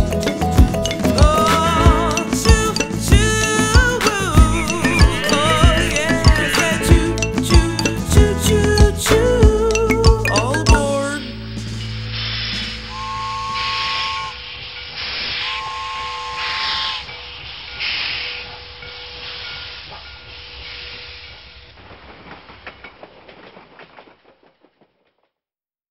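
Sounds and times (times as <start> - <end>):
two-note steam whistle: 12.2 - 19.4
steam hissing: 13.6 - 22.5.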